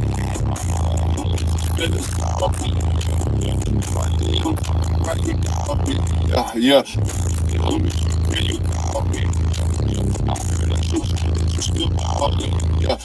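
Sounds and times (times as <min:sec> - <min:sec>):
bass-heavy music through car speakers: 0:00.0 - 0:13.0.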